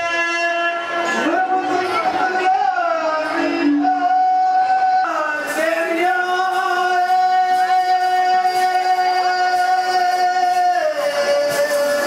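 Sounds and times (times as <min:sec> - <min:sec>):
person singing: 0:00.0 - 0:12.0.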